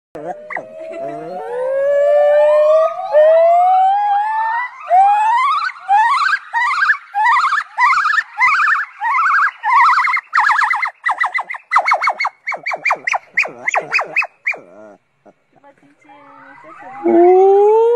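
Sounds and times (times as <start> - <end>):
gibbon singing: 0.2 - 17.9.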